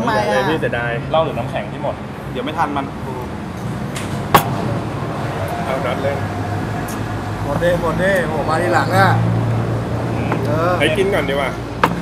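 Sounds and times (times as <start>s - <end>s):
men talking: 0.0s - 3.5s, 5.2s - 12.0s.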